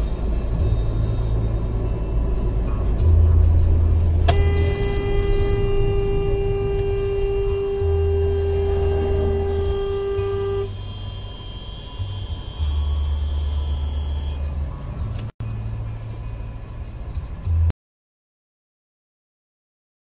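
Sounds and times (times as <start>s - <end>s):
car driving rumble: 0.0s - 17.7s
vehicle horn blast: 4.3s - 14.6s.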